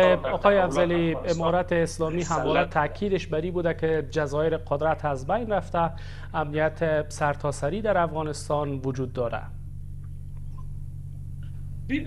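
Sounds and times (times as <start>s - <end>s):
voices: 0.0s - 5.8s
low electrical hum: 0.0s - 12.0s.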